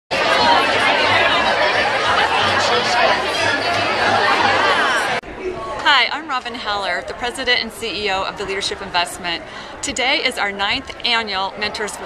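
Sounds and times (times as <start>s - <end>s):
crowd chatter: 0.1s - 12.0s.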